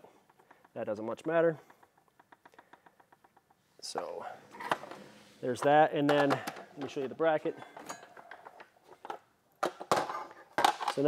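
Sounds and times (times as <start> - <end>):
metal parts clicking and rustling: 6.1 - 11.0.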